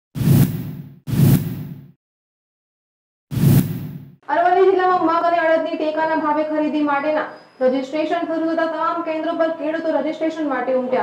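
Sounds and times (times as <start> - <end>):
whoosh with deep boom: 3.3 - 4.2.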